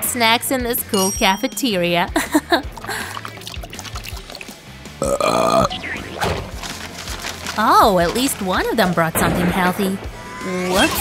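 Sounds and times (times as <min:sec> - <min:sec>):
loud burp: 0:05.0 - 0:05.8.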